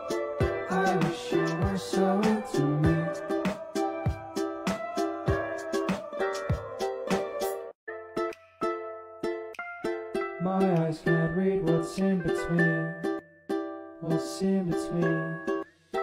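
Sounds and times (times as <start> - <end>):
ukulele picking chords: 0.0 - 16.0.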